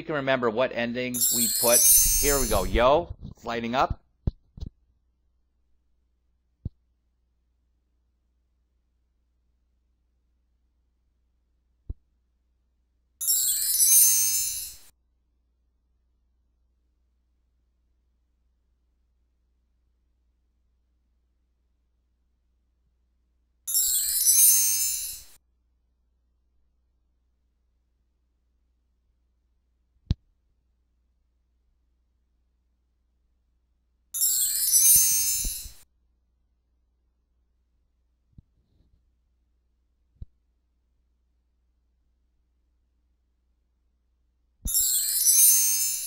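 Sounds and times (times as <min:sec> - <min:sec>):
jingling bell-like chime: 0:01.1 - 0:02.8, 0:13.2 - 0:14.9, 0:23.7 - 0:25.4, 0:34.2 - 0:35.8, 0:44.7 - 0:46.0.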